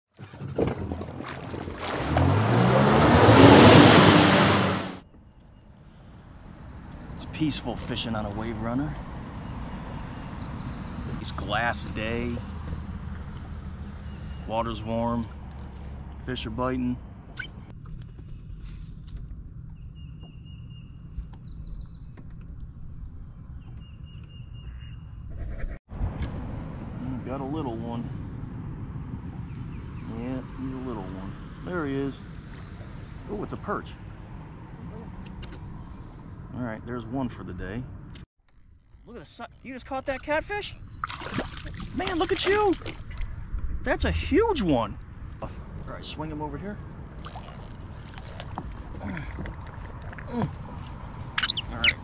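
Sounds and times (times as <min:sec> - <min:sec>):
waves washing: 0:00.2 - 0:05.0
bird singing: 0:05.0 - 0:15.4, 0:19.4 - 0:25.3, 0:29.0 - 0:33.8, 0:50.2 - 0:52.0
steady low rumble: 0:25.9 - 0:39.5, 0:42.7 - 0:52.0.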